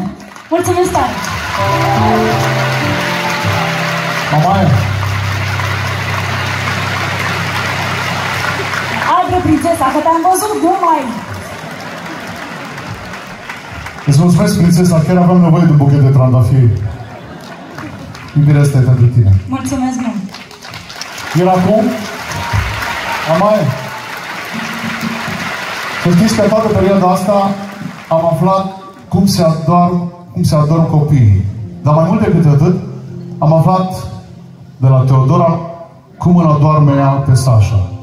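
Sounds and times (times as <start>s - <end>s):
audience applauding: 0.0s - 15.7s, 16.4s - 29.4s
hall noise: 1.6s - 10.4s
man speaking into microphone: 14.1s - 16.8s, 26.0s - 38.0s.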